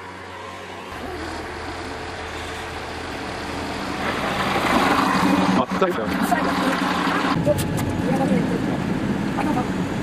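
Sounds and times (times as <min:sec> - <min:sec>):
diesel railcar engine drone: 0:00.0 - 0:10.0.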